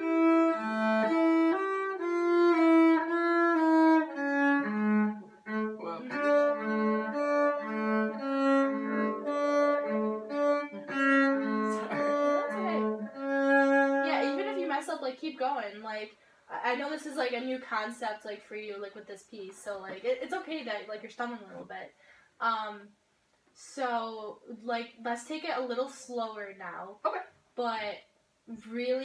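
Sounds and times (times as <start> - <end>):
bowed cello playing: 0.0 - 15.0.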